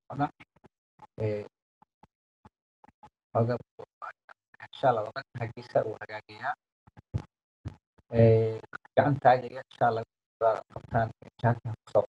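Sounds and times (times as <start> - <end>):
man speaking: 1.2 - 1.5, 3.4 - 3.9, 4.6 - 6.6, 8.2 - 12.0.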